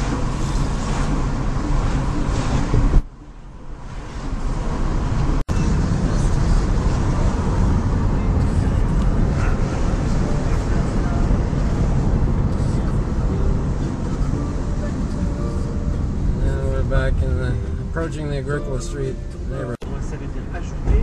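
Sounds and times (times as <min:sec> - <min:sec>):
car engine and tyre rumble: 0:00.0 - 0:21.0.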